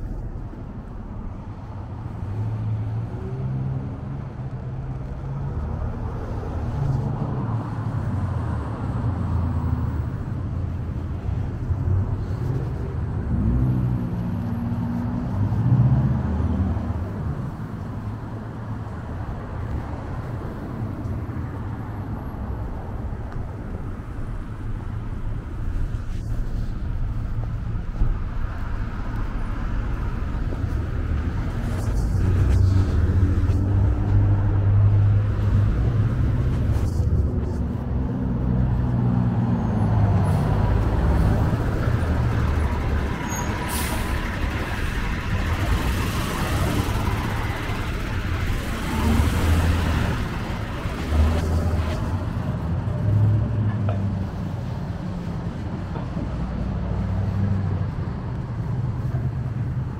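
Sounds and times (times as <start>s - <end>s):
vehicles passing on street: 0.0s - 59.9s.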